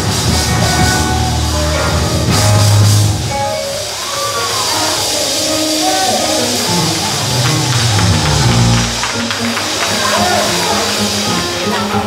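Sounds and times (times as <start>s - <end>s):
live church band music: 0.0s - 12.0s.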